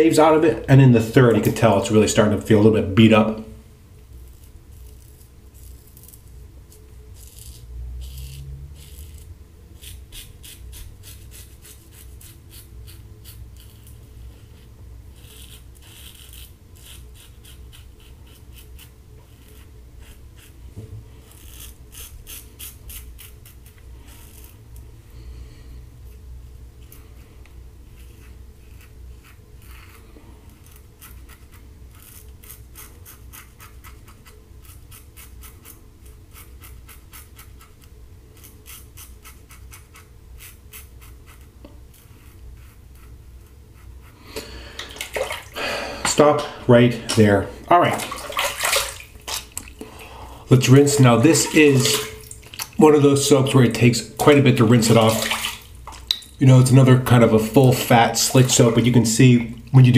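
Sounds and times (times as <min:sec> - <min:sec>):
razor scraping stubble: 0:04.1 - 0:20.6, 0:21.2 - 0:24.8, 0:27.9 - 0:45.2.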